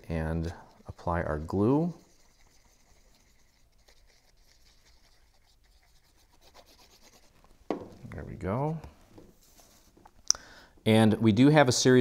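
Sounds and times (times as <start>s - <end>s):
glue tip scratching on cardstock: 0.4s - 7.4s.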